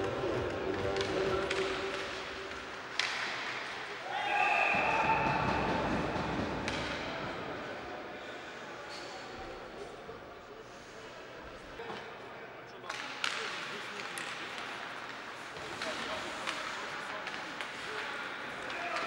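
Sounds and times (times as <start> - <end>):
voices and shouts: 4.0 - 5.6.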